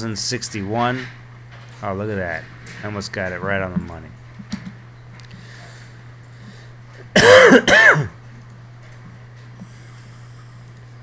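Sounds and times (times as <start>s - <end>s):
man coughing: 7.1s - 8.2s.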